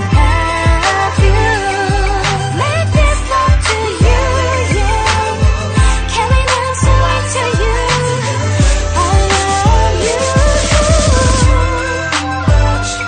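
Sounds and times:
r and b song with deep bass: 0:00.0 - 0:13.0.

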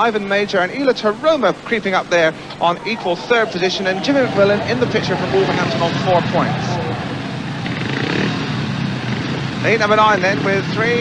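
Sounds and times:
motorcycle engines droning: 0:00.0 - 0:11.0.

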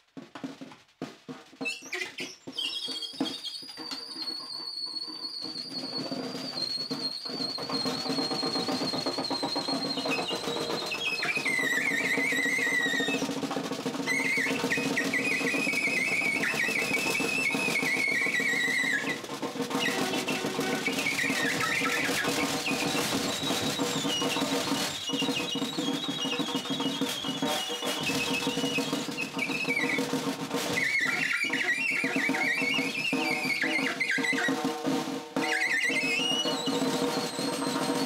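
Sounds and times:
snare drum rattling under hands: 0:00.0 - 0:38.0
high squealing alto saxophone: 0:14.1 - 0:26.3, 0:30.7 - 0:34.8.

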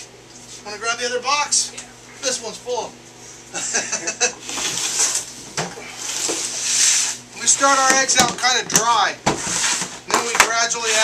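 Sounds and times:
plastic tub scraping on floor: 0:04.4 - 0:05.3, 0:09.3 - 0:11.0.

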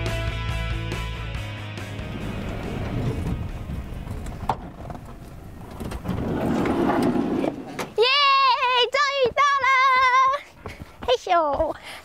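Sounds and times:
woman singing high-pitched phrases: 0:08.0 - 0:10.4.

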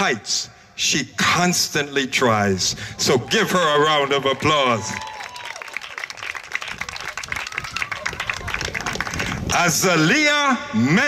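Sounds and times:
audience applauding: 0:04.1 - 0:09.6.

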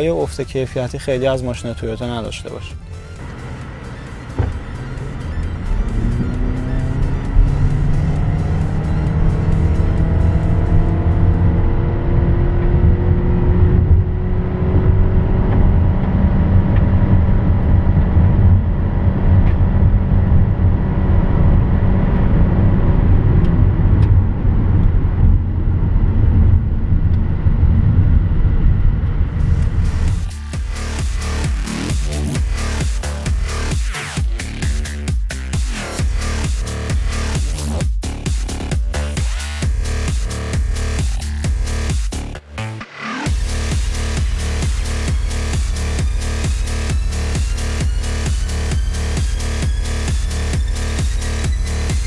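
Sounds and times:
rising whine: 0:00.0 - 0:37.8, 0:38.5 - 0:52.0
car engine drone at high revs: 0:00.0 - 0:52.0.

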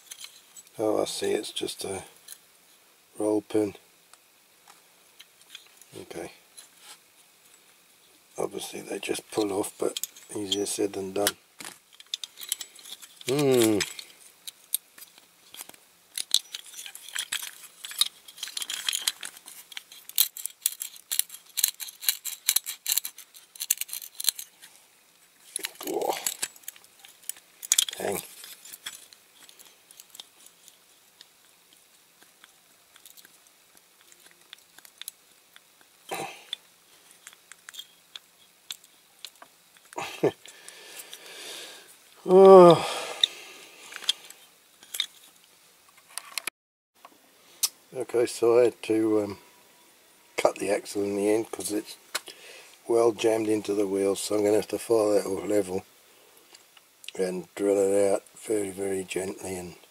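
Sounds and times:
clicking and scraping small metal parts: 0:00.0 - 0:01.4, 0:02.2 - 0:02.5, 0:05.2 - 0:05.9, 0:08.6 - 0:41.3, 0:43.1 - 0:46.5
person humming: 0:13.3 - 0:14.1, 0:42.2 - 0:43.6.

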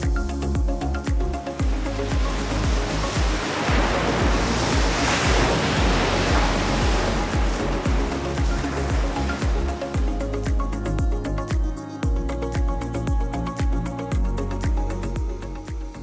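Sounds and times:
music with steady beat: 0:00.0 - 0:16.0
ocean surf rushing: 0:01.4 - 0:11.5.

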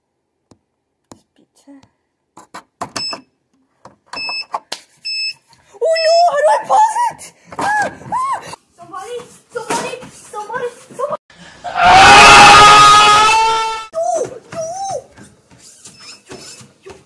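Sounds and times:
child yelping and exclaiming: 0:05.8 - 0:11.2, 0:13.9 - 0:15.2
child screaming: 0:11.7 - 0:15.1.

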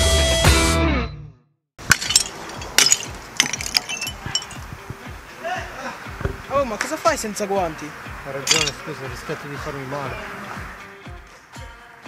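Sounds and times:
brick fragments clinking: 0:01.8 - 0:05.2, 0:08.4 - 0:08.9
hammer knocking brick: 0:06.2 - 0:06.5.

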